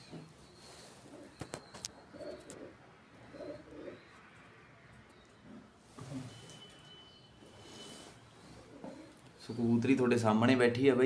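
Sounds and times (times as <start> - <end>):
pigeon cooing: 0.8 - 4.1, 8.5 - 9.5.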